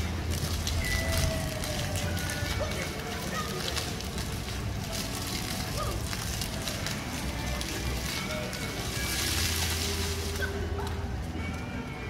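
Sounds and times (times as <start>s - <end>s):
fountain jets splashing on paving: 0.0s - 12.0s
music: 0.0s - 12.0s
voices: 0.8s - 4.5s.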